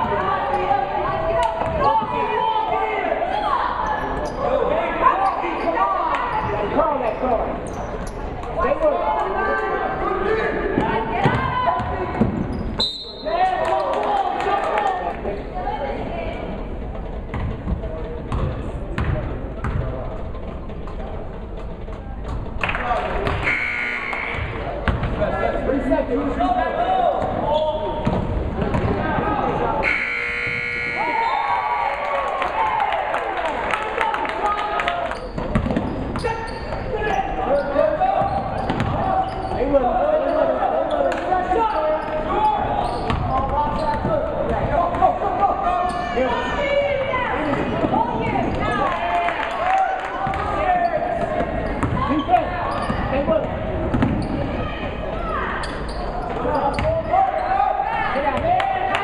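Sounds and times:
crowd and player voices: 0.0s - 59.0s
buzzer horn: 23.4s - 24.4s, 29.8s - 31.4s.

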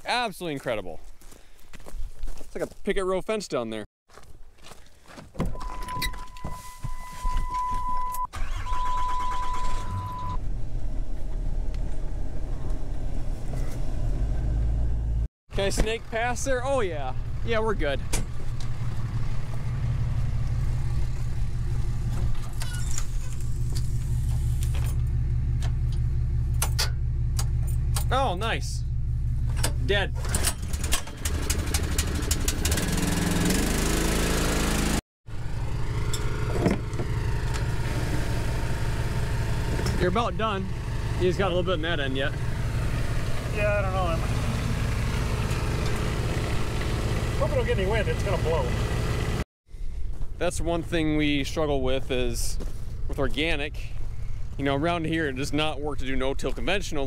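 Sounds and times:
engine running steadily: 10.0s - 51.4s.

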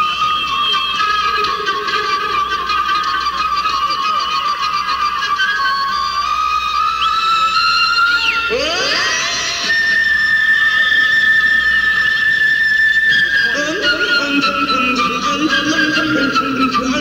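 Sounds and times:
solo flute playing: 0.0s - 17.0s.

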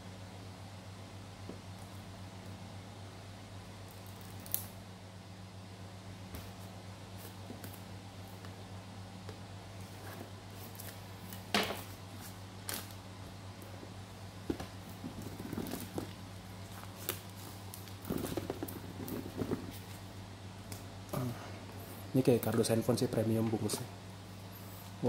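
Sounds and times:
steady low hum: 0.0s - 25.0s
plastic wrap crinkling: 14.6s - 20.1s.

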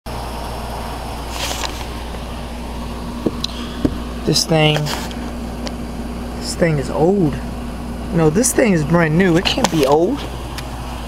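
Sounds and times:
low mechanical hum: 0.1s - 11.0s.

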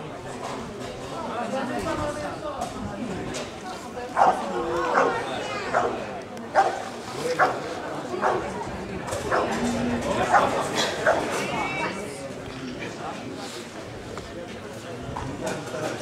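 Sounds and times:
dog barking: 4.2s - 6.0s, 6.6s - 6.8s, 8.2s - 8.4s, 10.3s - 11.2s.

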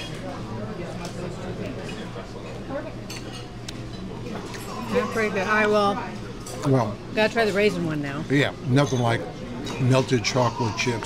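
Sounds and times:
low chatter: 0.0s - 11.0s
dishes and cutlery clinking: 3.1s - 5.0s.

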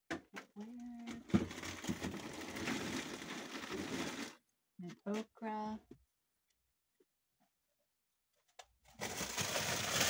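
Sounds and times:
plastic bags crinkling: 1.3s - 4.4s, 8.9s - 10.0s.

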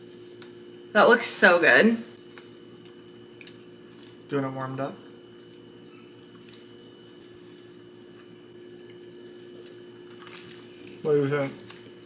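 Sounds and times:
steady low hum: 0.0s - 12.0s
faint chewing: 6.3s - 12.0s
crackly crunch of croissant bite: 6.4s - 12.0s.

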